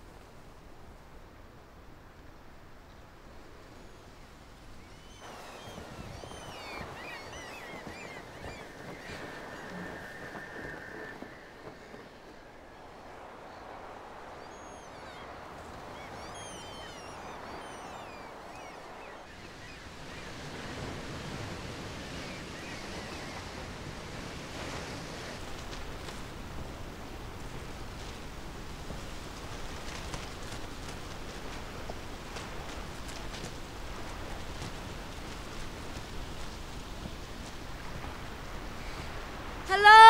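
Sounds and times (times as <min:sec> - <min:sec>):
rushing wash: 0:00.0 - 0:40.0
small birds chirping: 0:03.9 - 0:11.0, 0:12.8 - 0:20.9.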